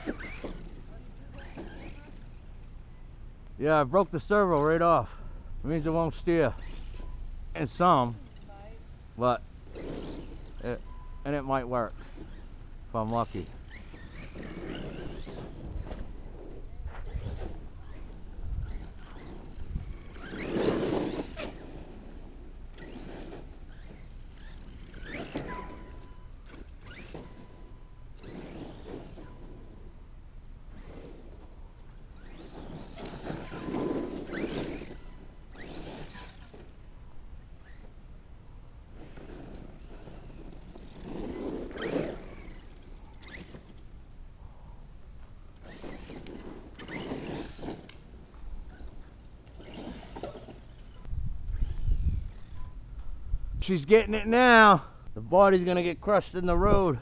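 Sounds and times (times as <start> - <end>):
electric motor whining: 0.0 - 3.0, 9.7 - 30.0, 30.6 - 36.9, 39.0 - 44.0, 45.6 - 53.1
tyres running over dirt: 0.0 - 44.1, 45.0 - 52.8.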